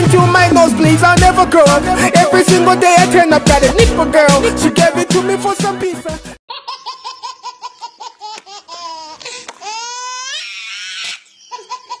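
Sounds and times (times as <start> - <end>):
baby laughing: 6.5 - 12.0
baby squealing: 6.5 - 12.0.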